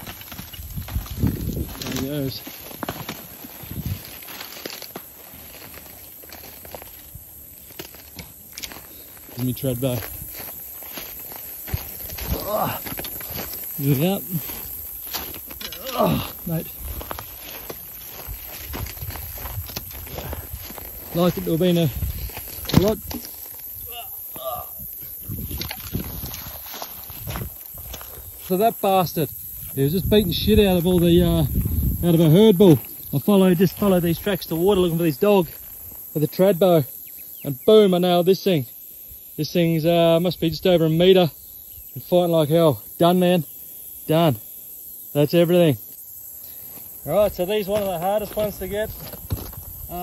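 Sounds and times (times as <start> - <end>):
twigs snapping: 0.0 - 9.4
rustling through dry grass: 0.0 - 23.8, 25.1 - 28.5.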